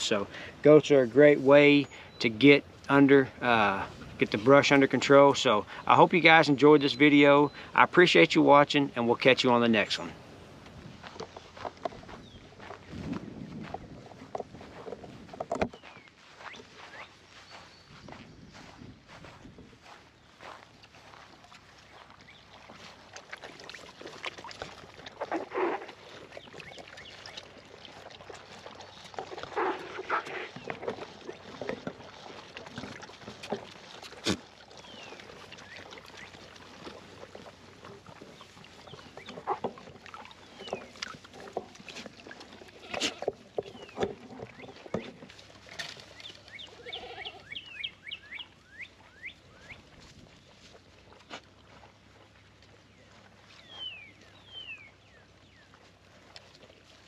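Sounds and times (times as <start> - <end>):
goats slurping water: 0.0 - 57.0
songbird chirping: 11.0 - 23.0, 34.7 - 42.1, 43.6 - 57.0.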